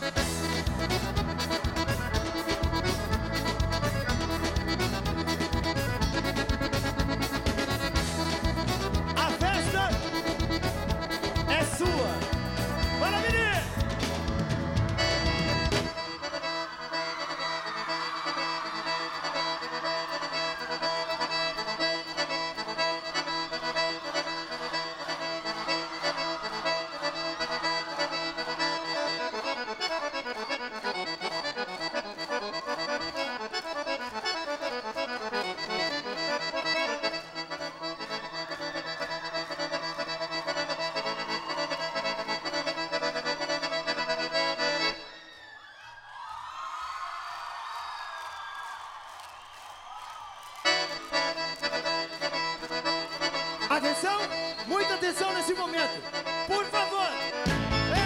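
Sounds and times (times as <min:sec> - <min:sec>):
band with steady beat: 0:00.0 - 0:16.2, 0:56.2 - 0:58.0
piano accordion playing: 0:00.0 - 0:45.4, 0:50.6 - 0:58.0
crowd noise: 0:00.0 - 0:58.0.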